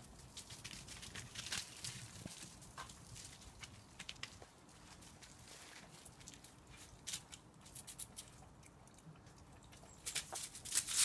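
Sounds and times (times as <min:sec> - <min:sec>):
puppy paws clicking and pattering: 0:00.1 - 0:11.0.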